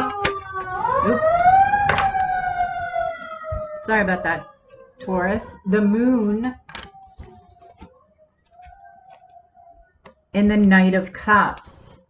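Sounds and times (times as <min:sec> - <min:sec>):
siren wailing: 0:00.0 - 0:10.0.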